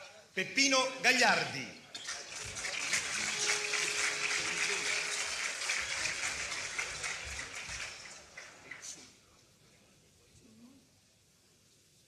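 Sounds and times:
audience applause: 2.0s - 9.1s.

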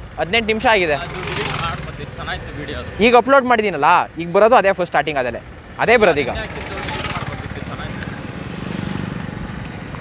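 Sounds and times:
motorcycle engine running: 0.6s - 3.8s, 5.4s - 10.0s.

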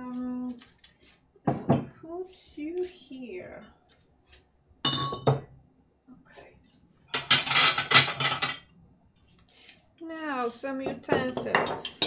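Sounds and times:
stoneware ladles clinking: 7.2s - 8.7s, 11.1s - 12.0s.

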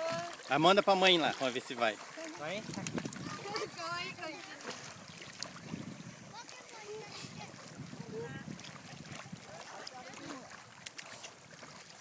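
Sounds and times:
water sloshing around waders: 0.0s - 12.0s
wind: 0.0s - 12.0s.

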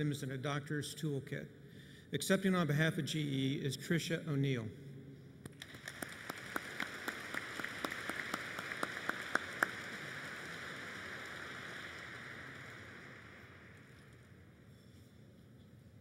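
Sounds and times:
sharp close claps: 5.4s - 14.3s
crowd applause: 5.6s - 14.1s.

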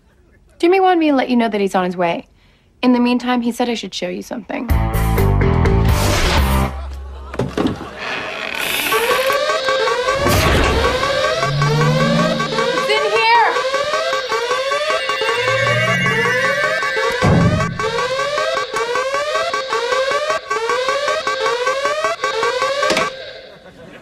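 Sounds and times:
electronic alarm siren whooping: 8.8s - 23.9s
thud: 17.2s - 17.8s.

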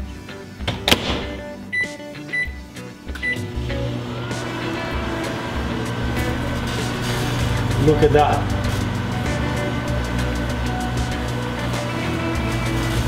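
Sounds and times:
keypad beeps: 1.7s - 2.6s, 3.2s - 3.4s
microwave humming: 2.4s - 13.0s.

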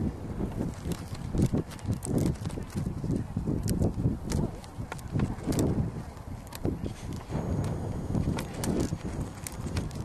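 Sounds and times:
faint clicks: 3.6s - 10.0s.

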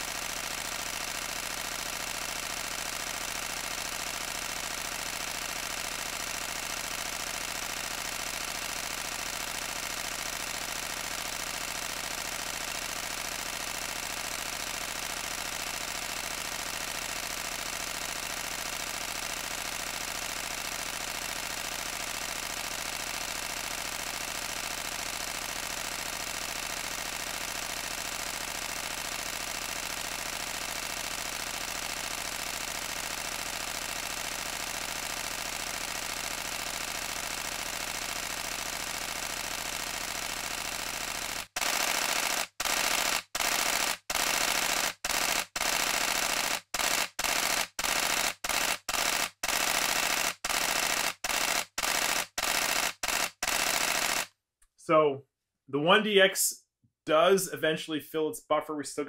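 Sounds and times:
camera shutter burst: 0.0s - 54.3s.

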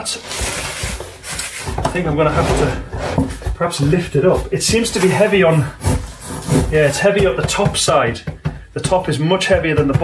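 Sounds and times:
packaging rustling and scraping: 0.0s - 7.2s.

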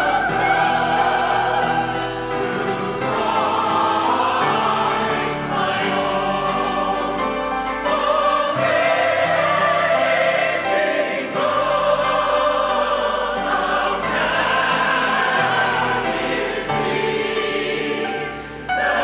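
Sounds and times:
choir singing a hymn: 0.0s - 19.0s
grand piano: 0.0s - 19.0s.

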